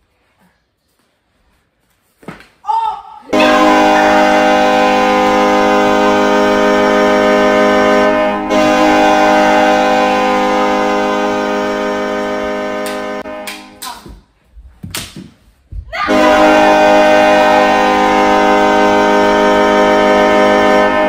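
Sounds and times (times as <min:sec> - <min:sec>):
hockey goal horn: 0:03.3 - 0:13.8, 0:16.1 - 0:21.0.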